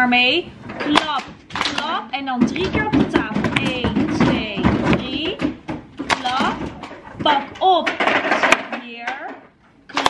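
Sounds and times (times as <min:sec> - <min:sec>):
voices: 0:00.0 - 0:10.0
palms slapping on tables: 0:00.8 - 0:10.0.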